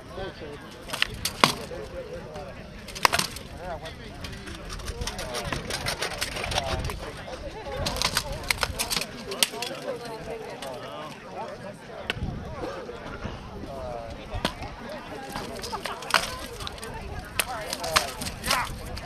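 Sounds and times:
crowd chatter: 0.0s - 19.0s
rattan swords striking shields: 0.9s - 1.7s, 2.9s - 3.5s.

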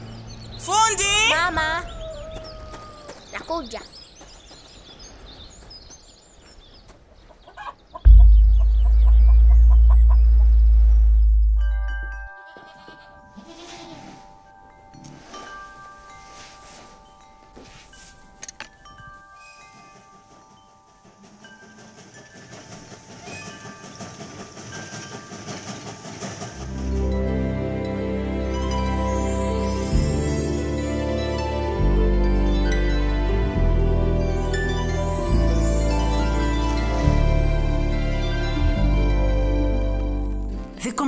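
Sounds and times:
loud deep rumble: 8.1s - 12.2s
chime-like ringing tones: 11.6s - 24.0s, 34.2s - 38.2s.

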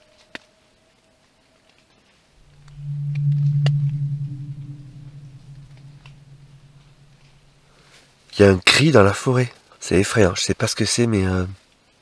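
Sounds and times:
long low scream: 2.4s - 7.6s.

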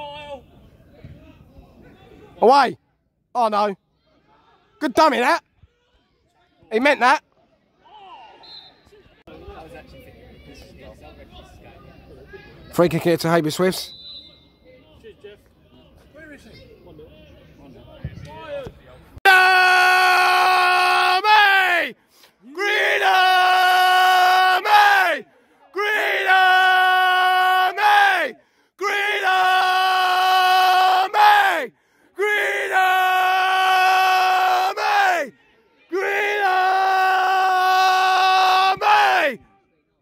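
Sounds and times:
person shouting long held shouts: 19.2s - 21.9s, 22.5s - 25.2s, 25.8s - 39.4s.

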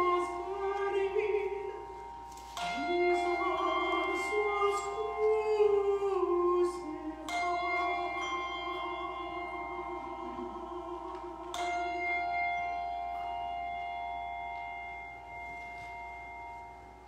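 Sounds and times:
handbells ringing a chord: 0.0s - 17.0s.

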